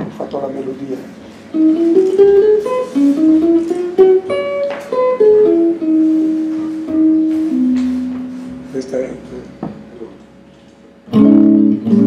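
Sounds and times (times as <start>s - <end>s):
jazz guitar melody: 0.0s - 12.0s.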